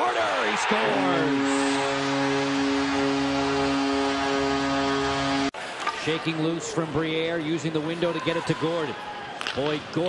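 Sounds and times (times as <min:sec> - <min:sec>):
crowd noise: 0:00.0 - 0:09.5
arena goal horn blast: 0:00.3 - 0:05.6.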